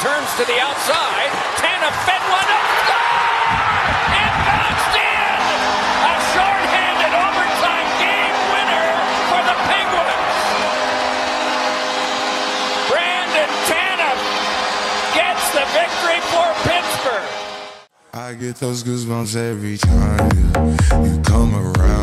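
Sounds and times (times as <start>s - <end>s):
crowd roaring and cheering: 0.0s - 17.9s
goal horn long steady tone: 5.2s - 17.9s.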